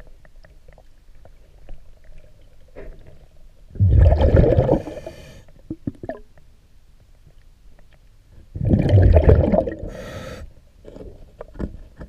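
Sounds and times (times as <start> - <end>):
small clicks and crackles underwater: 0.0 - 3.7, 4.4 - 8.5, 9.1 - 12.0
regulator exhaling bubbles: 3.8 - 5.1, 8.5 - 10.0.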